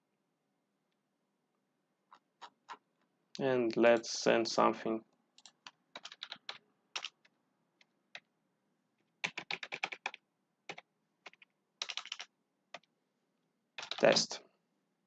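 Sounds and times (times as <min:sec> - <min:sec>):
computer keyboard typing: 0:05.4 - 0:08.3, 0:09.2 - 0:12.9, 0:13.8 - 0:14.2.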